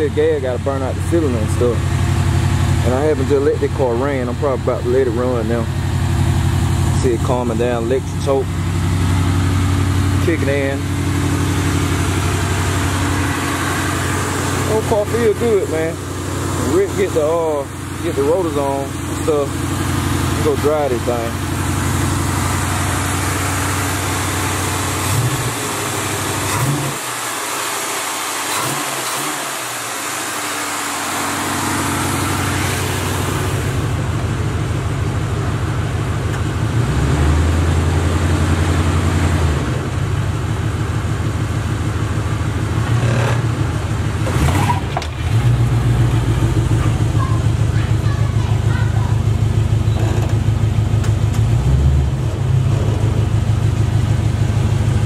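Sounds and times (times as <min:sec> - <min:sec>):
tires spinning on concrete: 0:00.0 - 0:55.0
car engine revving hard: 0:06.3 - 0:34.1, 0:36.7 - 0:40.0, 0:42.7 - 0:48.8, 0:51.3 - 0:53.7.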